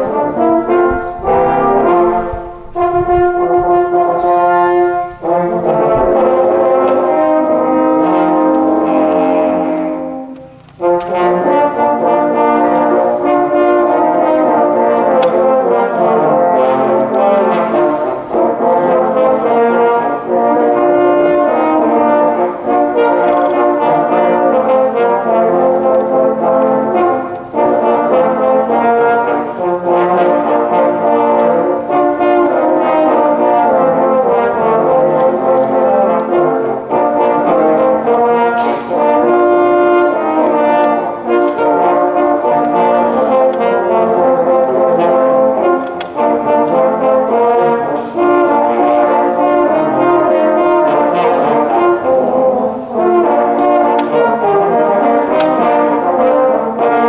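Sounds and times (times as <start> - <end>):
french horns playing in harmony: 0.0 - 57.0.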